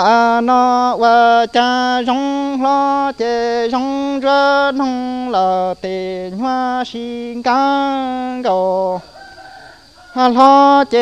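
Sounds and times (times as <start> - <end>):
man singing high drawn-out notes: 0.0 - 9.4, 10.0 - 11.0.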